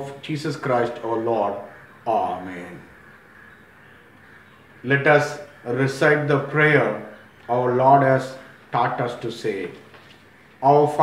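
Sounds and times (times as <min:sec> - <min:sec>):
man speaking: 0:00.0 - 0:03.0, 0:04.8 - 0:09.9, 0:10.6 - 0:11.0
faint background noise: 0:00.0 - 0:11.0.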